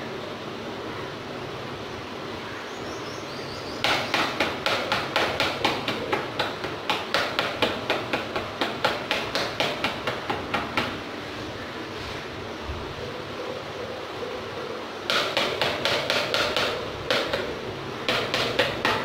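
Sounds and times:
steady background hiss: 0.0 - 19.0.

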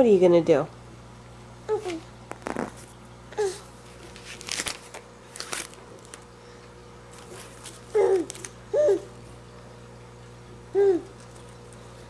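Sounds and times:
baby cooing: 1.7 - 2.0, 3.4 - 3.6, 7.9 - 9.1, 10.7 - 11.2.

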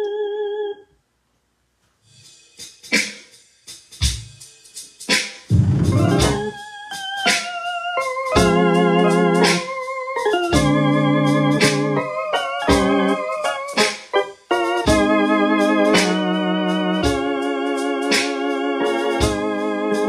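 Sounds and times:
electronic keyboard organ chords: 0.0 - 0.8, 5.5 - 20.0.

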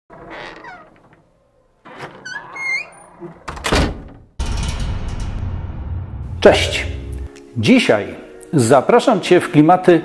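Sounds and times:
loud thump: 3.7 - 7.3.

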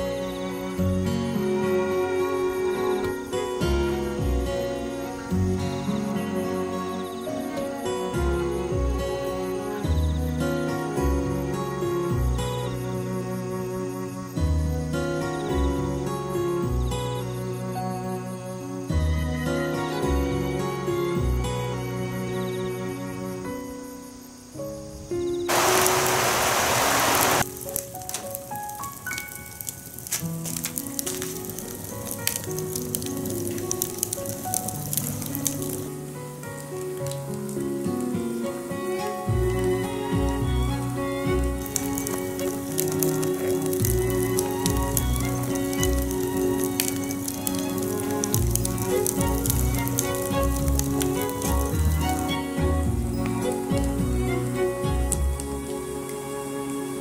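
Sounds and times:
background music: 0.0 - 25.8, 27.4 - 57.0
wood fire crackling: 25.5 - 56.4
loud hiss: 25.5 - 57.0.

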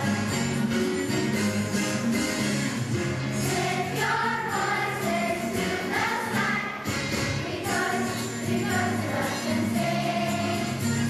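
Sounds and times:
musical accompaniment: 0.0 - 11.0
children's choir singing: 3.4 - 10.9.

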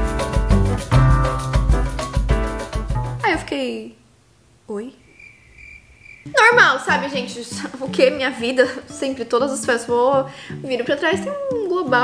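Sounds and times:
woman speaking: 3.2 - 4.0, 4.7 - 5.1, 6.3 - 12.0
cricket chirping: 5.0 - 7.0.

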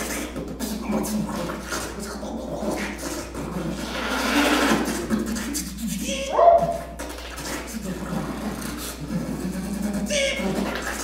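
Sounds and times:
voice-like fragments: 0.0 - 11.0
rising pitched cry: 6.1 - 6.9.

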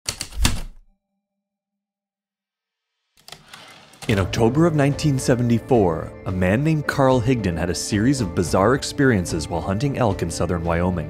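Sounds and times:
typewriter keys clacking: 0.1 - 0.8, 3.2 - 4.2.

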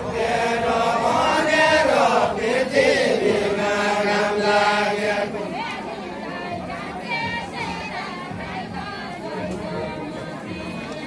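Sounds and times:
group singing slow chant: 0.0 - 10.9.

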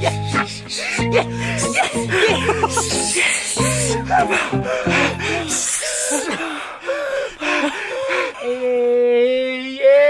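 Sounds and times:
man laughing: 0.0 - 6.5
breaths: 0.1 - 8.7.

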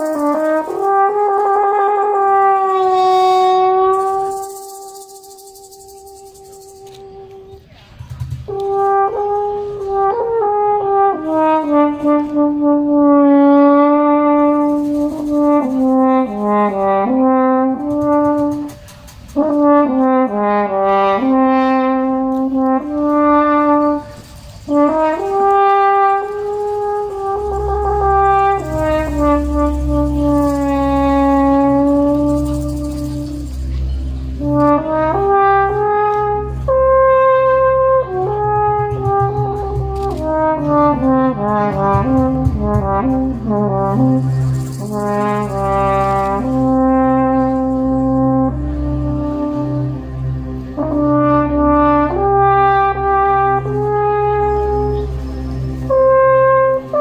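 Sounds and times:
french horn melody: 0.0 - 57.0
low steady drone: 0.0 - 57.0.

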